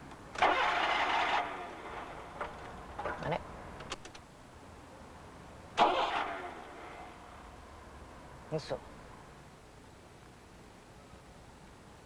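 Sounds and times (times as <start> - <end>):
car engine cranking: 0.3 - 4.2, 5.8 - 6.9
starter clicks: 2.4 - 4.3.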